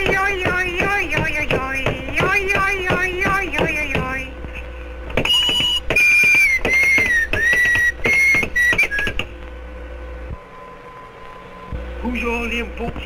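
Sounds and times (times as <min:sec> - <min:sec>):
faint steady hum: 0:00.0 - 0:13.0
high whistle-like notes: 0:05.2 - 0:09.3.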